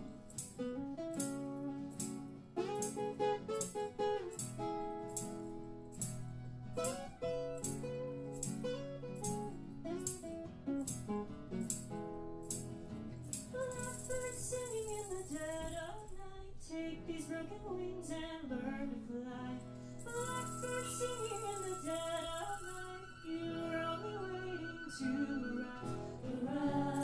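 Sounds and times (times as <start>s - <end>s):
tambourine: 0.0s - 16.3s, 19.6s - 23.6s, 24.2s - 27.0s
strummed acoustic guitar: 0.0s - 27.0s
women singing: 16.7s - 27.0s.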